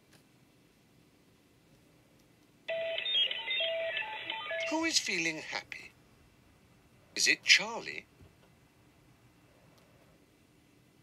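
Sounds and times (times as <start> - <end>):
person speaking: 3.0 - 6.0.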